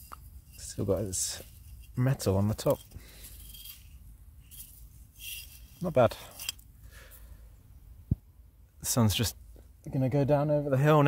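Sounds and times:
scraping soil off glass bottle: 0:00.0 - 0:06.7
person speaking: 0:00.5 - 0:03.0, 0:05.8 - 0:06.5.

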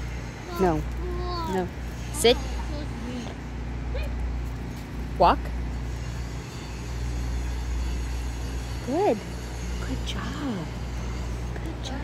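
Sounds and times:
traffic rumble: 0:00.0 - 0:12.0
woman speaking a command: 0:00.5 - 0:00.8, 0:01.5 - 0:02.6, 0:05.2 - 0:05.4.

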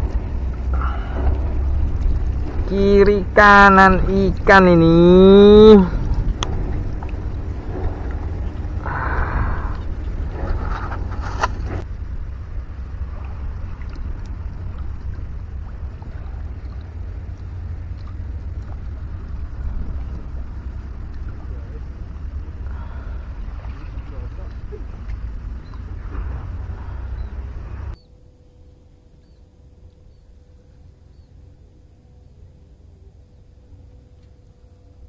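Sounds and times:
wind buffeting microphone: 0:00.0 - 0:28.0
brief rustle: 0:10.4 - 0:11.8.

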